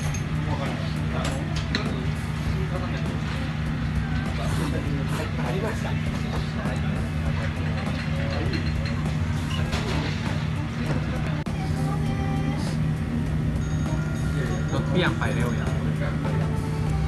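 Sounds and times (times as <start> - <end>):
music: 0.0 - 17.0.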